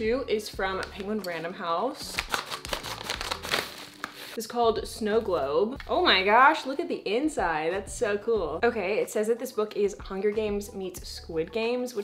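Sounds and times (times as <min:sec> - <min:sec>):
scissors cutting padded mailer: 0:02.1 - 0:04.2
paper mailer crinkling and rustling: 0:02.1 - 0:04.4.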